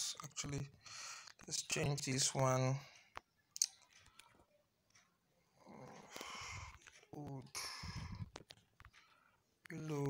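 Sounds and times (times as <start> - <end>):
soft breath-like noise: 5.4 - 9.6.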